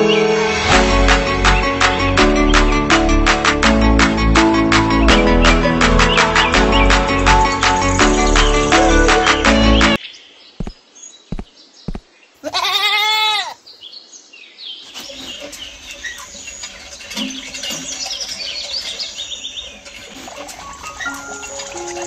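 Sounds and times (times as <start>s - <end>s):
goat bleating: 12.4s - 13.6s.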